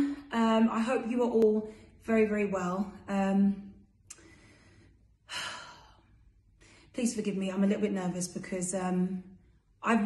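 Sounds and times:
woman breathing: 4.1s - 7.0s.

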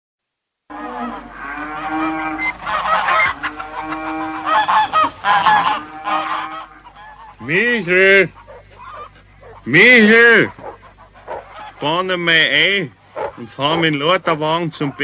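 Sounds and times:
geese honking and cackling: 0.7s - 15.0s
man shouting a call: 9.7s - 10.6s.

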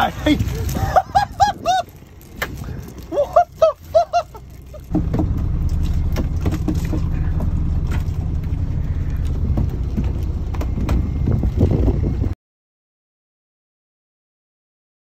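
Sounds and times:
phone handling rumble: 0.4s - 12.3s
knocks and rattles: 4.4s - 12.3s.

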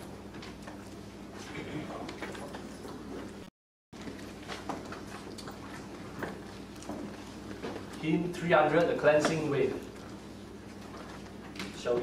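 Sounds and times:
low electrical hum: 0.0s - 12.0s.

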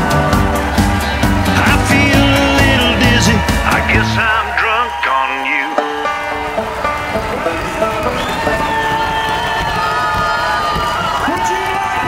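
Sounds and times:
country band playing live: 0.0s - 4.6s
audience cheering and shouting: 0.0s - 12.0s.

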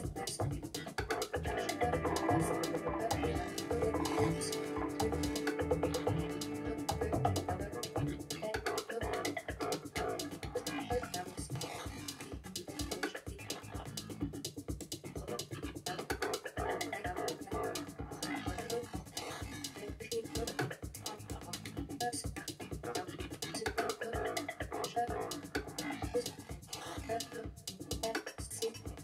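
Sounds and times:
stuttering experimental electronic music: 0.0s - 29.0s.

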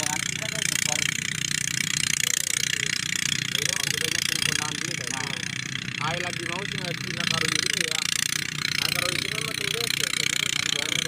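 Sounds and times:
people talking indistinctly: 0.0s - 11.0s
small engine droning: 0.0s - 11.0s.

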